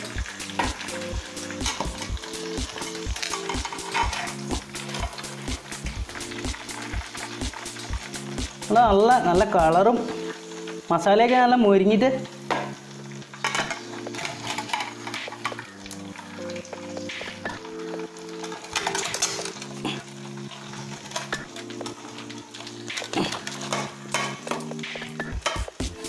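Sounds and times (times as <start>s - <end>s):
chicken sizzling in frying oil: 0.0s - 26.0s
soft background music: 0.0s - 26.0s.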